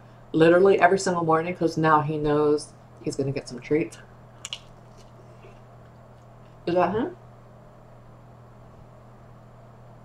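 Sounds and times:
steady low hum: 0.0 - 10.0
crisp biting clicks: 4.4 - 5.2
person chewing: 4.4 - 5.6.

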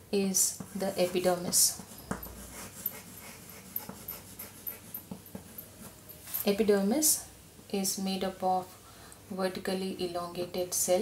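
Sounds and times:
chalk scratching on blackboard: 0.4 - 6.6.

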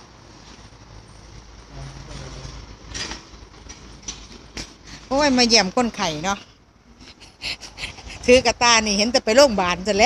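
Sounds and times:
street noise rumble: 0.0 - 10.0.

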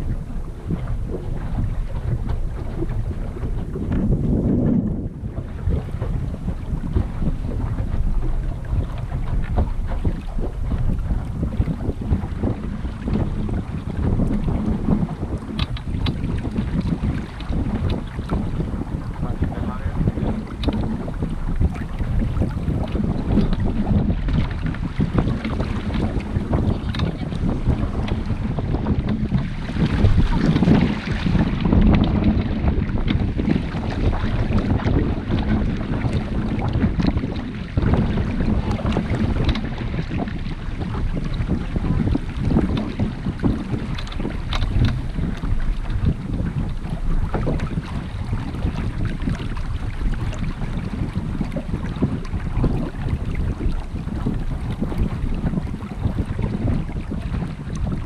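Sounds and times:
water rushing along hull: 0.0 - 58.0
wind buffeting microphone: 0.0 - 58.0.

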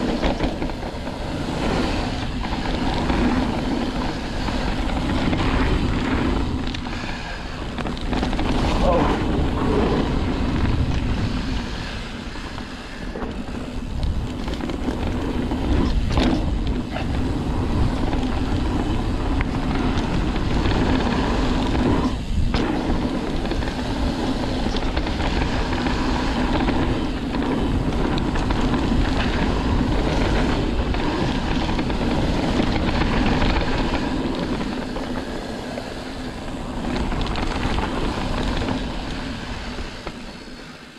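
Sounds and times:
bike tyres rolling over dirt: 0.0 - 40.9
wind rushing over microphone: 0.0 - 40.9.

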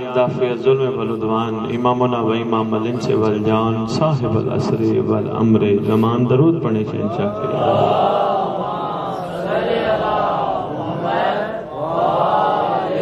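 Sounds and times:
man chanting into a microphone: 0.0 - 7.9.

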